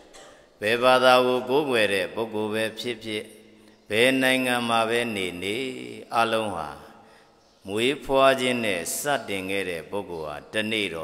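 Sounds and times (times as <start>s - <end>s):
man chanting: 0.6s - 11.0s.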